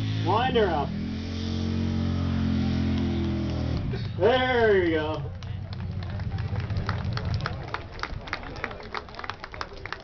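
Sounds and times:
truck engine rumbling: 0.0s - 10.0s
spectators clapping: 4.8s - 10.0s.

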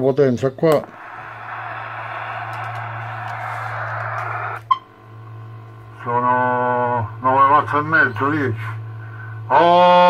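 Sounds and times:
low hum: 0.8s - 9.5s
radio hiss: 0.8s - 9.6s.

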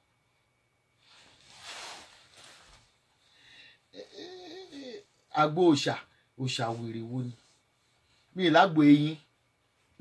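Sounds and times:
woman humming softly: 4.0s - 5.0s.

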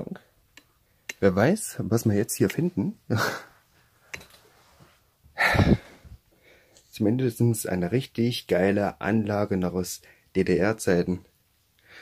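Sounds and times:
man exhaling: 5.4s - 6.2s.

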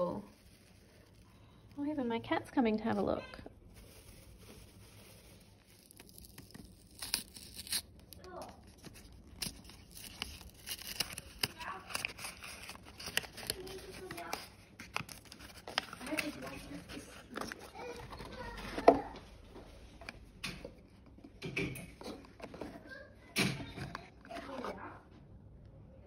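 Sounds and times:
paper wrapping tearing and crinkling: 3.2s - 19.1s.

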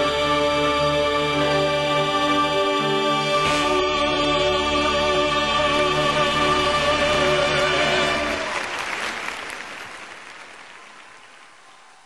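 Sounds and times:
audience applause: 7.8s - 12.0s.

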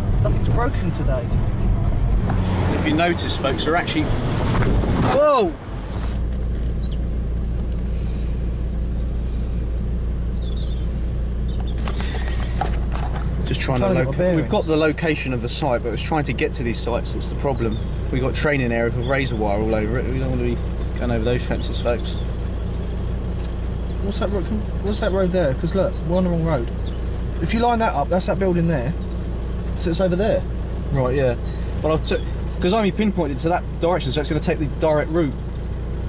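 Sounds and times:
car engine idling: 0.0s - 36.0s.

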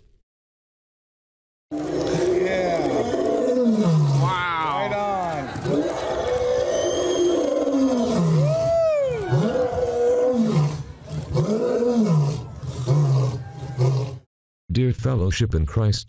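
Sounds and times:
lion roaring: 1.7s - 14.3s.

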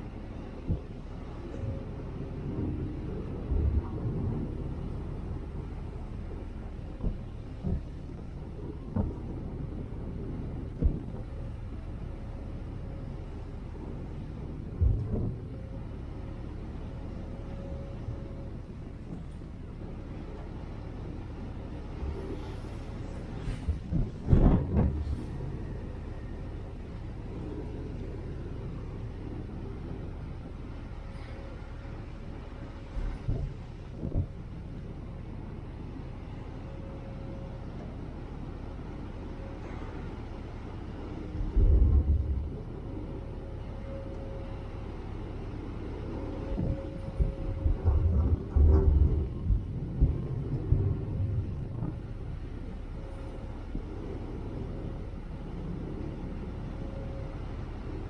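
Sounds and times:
ferry engine rumble: 0.0s - 58.0s
rushing wake water: 0.0s - 58.0s
wind buffeting microphone: 0.0s - 58.0s.

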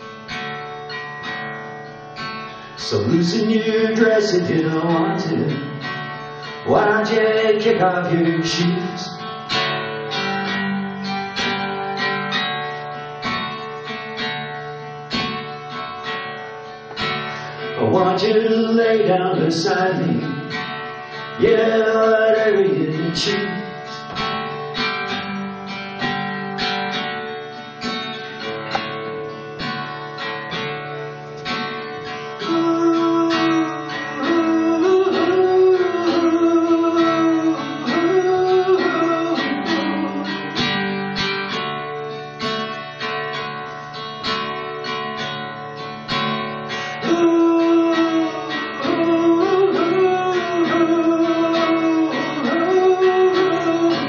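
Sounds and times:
acoustic guitar strummed: 0.0s - 54.0s.

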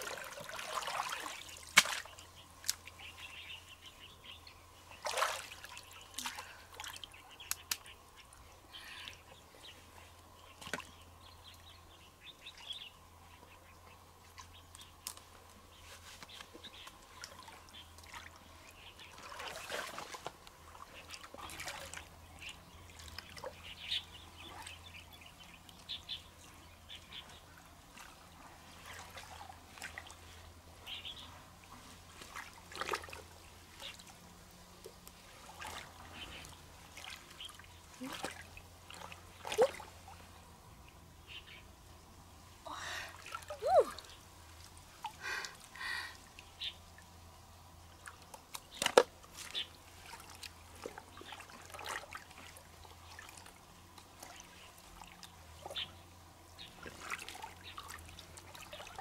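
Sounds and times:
stream water splashing: 0.0s - 9.4s, 10.3s - 12.9s, 13.9s - 59.0s.

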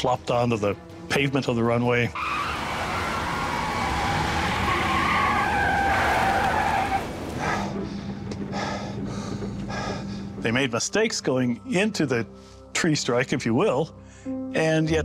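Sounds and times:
airliner tyres screeching on runway: 2.2s - 7.5s.

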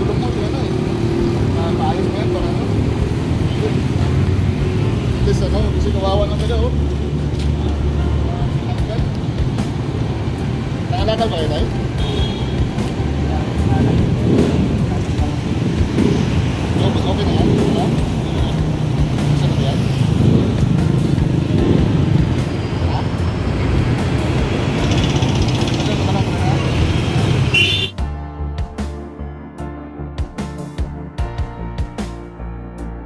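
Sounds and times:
motor vehicles rumbling: 0.0s - 29.2s
people talking: 16.8s - 17.9s.

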